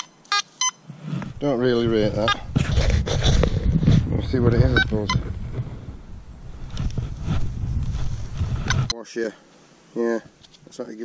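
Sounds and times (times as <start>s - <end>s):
rustles: 0.0s - 11.0s
wind rumbling on microphone: 1.0s - 8.9s.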